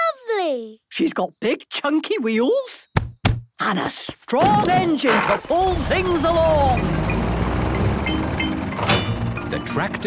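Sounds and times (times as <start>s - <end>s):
cartoon tractor engine rumble: 4.7s - 10.0s
trailer hitch clunk: 6.8s - 9.8s.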